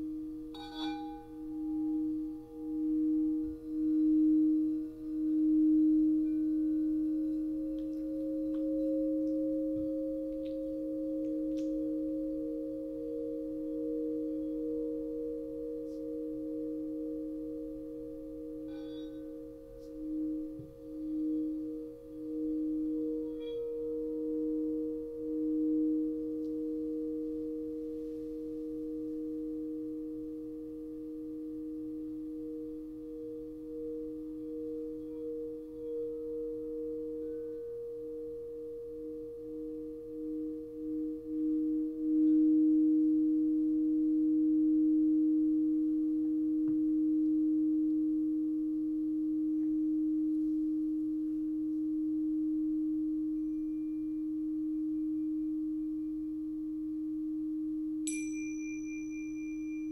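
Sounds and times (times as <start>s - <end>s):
high crystal singing bowl ringing: 0.0s - 59.9s
low crystal singing bowl ringing: 0.0s - 59.9s.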